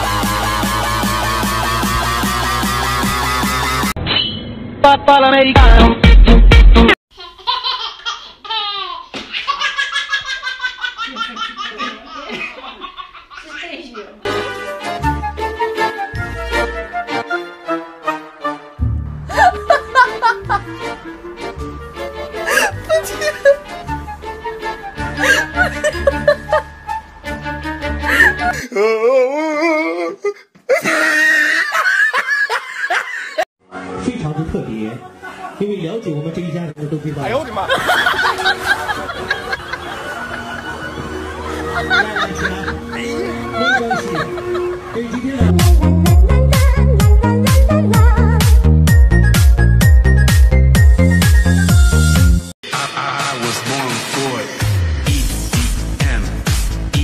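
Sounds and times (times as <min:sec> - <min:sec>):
electronic dance music: 0:00.0 - 0:04.0, 0:05.4 - 0:07.0, 0:45.3 - 0:57.0
baby laughing: 0:07.1 - 0:14.3, 0:25.2 - 0:26.7
person laughing: 0:19.3 - 0:20.9, 0:22.4 - 0:23.7, 0:25.1 - 0:26.7, 0:28.0 - 0:28.7, 0:30.2 - 0:33.4, 0:37.7 - 0:45.5.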